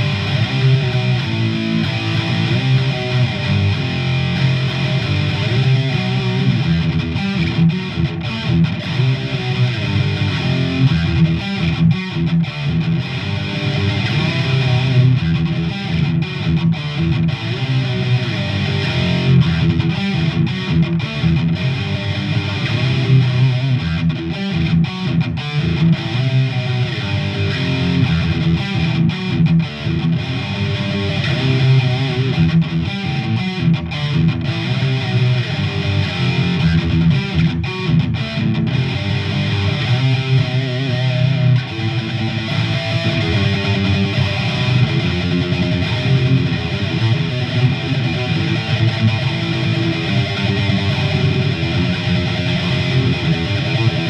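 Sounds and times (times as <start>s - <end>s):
distorted electric guitar riff: 0.0s - 54.0s.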